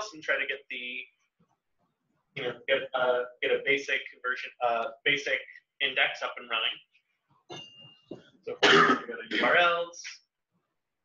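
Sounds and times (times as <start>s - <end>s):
person coughing: 8.5s - 9.7s.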